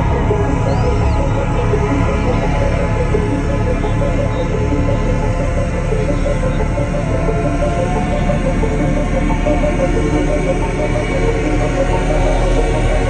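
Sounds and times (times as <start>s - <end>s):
heavy bass: 0.0s - 13.0s.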